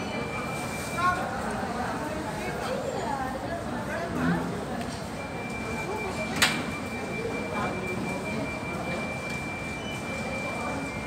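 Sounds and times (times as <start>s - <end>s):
faint room murmur: 0.0s - 11.0s.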